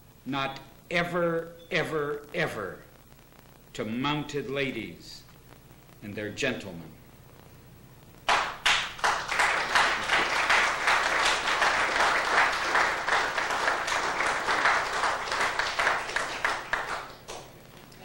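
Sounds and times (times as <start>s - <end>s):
audience applause: 8.3s - 17.5s.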